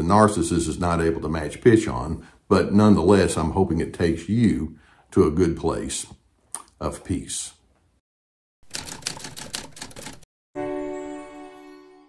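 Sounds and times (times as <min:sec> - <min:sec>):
fast sharp mechanical clicks: 0:08.6 - 0:10.2.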